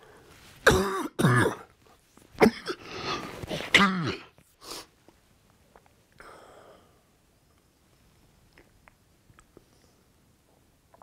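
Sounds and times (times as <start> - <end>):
man coughing: 0.7 - 1.7, 2.4 - 2.9, 3.7 - 4.3.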